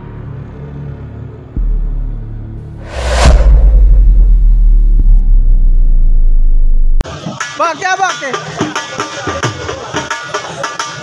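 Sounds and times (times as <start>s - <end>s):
deep cinematic bass rumble: 1.6s - 7.0s.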